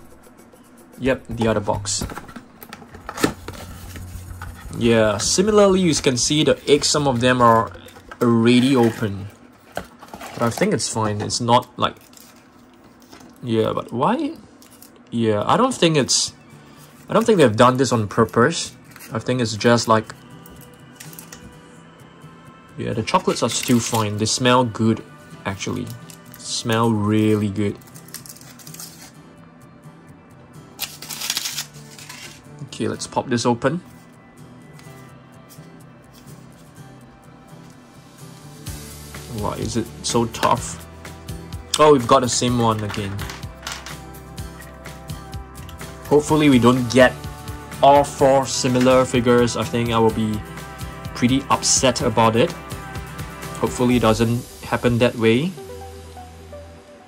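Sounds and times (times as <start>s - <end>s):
soft background music: 0.0s - 57.0s
plastic toy handling: 6.8s - 11.4s, 30.8s - 32.4s, 42.7s - 44.0s.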